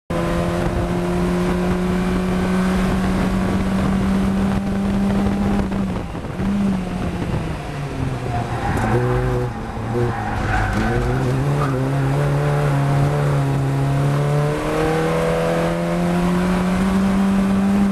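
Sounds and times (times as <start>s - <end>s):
race car engine at high revs: 0.1s - 17.9s.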